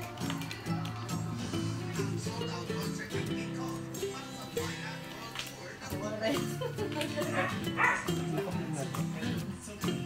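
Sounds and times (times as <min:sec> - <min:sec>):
background music: 0:00.0 - 0:10.0
dog barking: 0:07.3 - 0:08.2.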